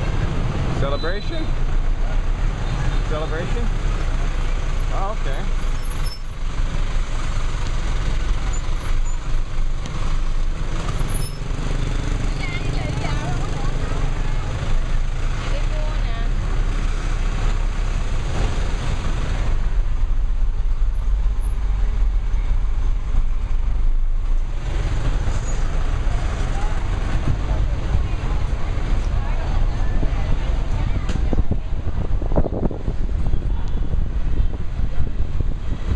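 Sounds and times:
engine rumble of traffic: 0:00.0 - 0:35.9
voices: 0:12.2 - 0:16.5, 0:26.0 - 0:32.0.

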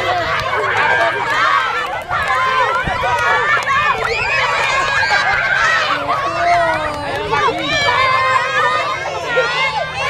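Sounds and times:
children shouting and laughing: 0:00.0 - 0:10.0.

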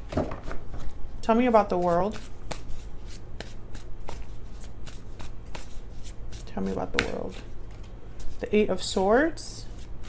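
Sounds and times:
cards being shuffled: 0:01.8 - 0:08.4.

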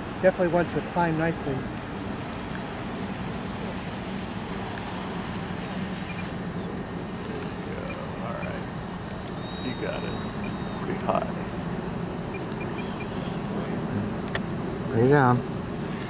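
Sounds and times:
electric ducted fans whining: 0:00.0 - 0:16.0.

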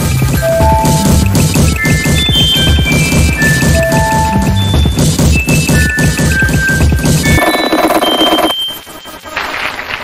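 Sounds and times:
pulsing electronic noise: 0:07.2 - 0:09.2
high beeping tone: 0:07.3 - 0:08.9.

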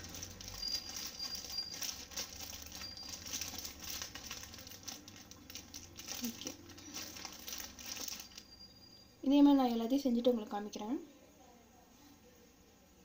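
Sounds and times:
plastic sheet crinkling: 0:00.0 - 0:08.6.

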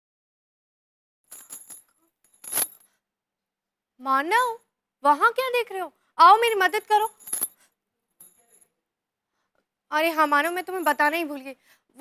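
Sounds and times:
jewellery jingling: 0:01.3 - 0:03.0, 0:06.4 - 0:08.8, 0:10.2 - 0:11.5.

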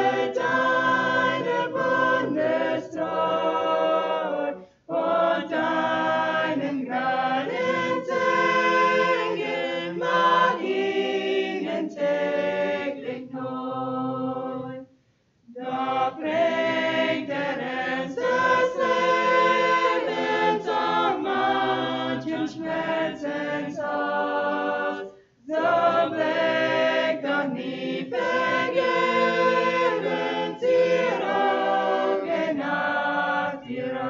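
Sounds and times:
mixed choir singing a cappella: 0:00.0 - 0:14.9, 0:15.5 - 0:34.0.

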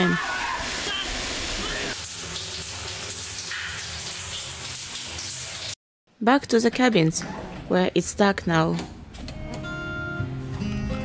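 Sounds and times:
shower running: 0:00.0 - 0:05.8.

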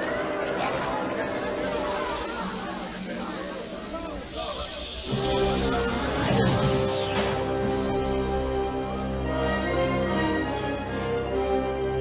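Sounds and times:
dramatic film music: 0:00.0 - 0:12.0
snake hissing: 0:01.5 - 0:08.2.

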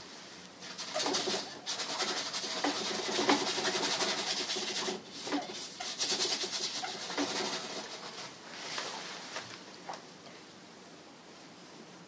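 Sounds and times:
brush scrubbing paint on canvas: 0:00.6 - 0:09.4.

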